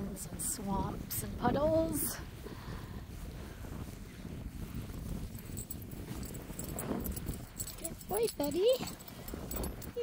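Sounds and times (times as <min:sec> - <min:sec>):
wind rumbling on microphone: 0:00.0 - 0:10.0
footsteps on dry grass: 0:00.1 - 0:09.5.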